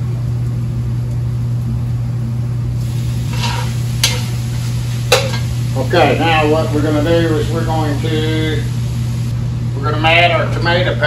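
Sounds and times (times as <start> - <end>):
steady low hum: 0.0 - 11.0
faint sizzling: 2.4 - 9.4
scraping in pan: 2.8 - 5.7
utensil tapping pan: 3.3 - 5.6.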